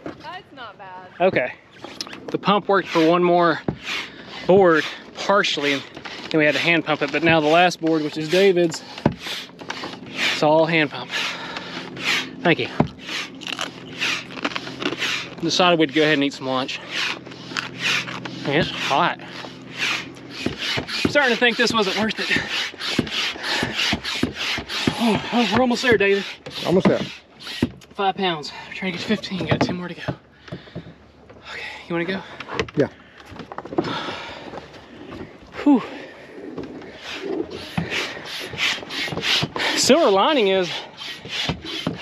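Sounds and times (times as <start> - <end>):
hand pump whooshing: 1.7 - 29.8, 33.7 - 42.0
hand pump air hiss: 37.1 - 42.0.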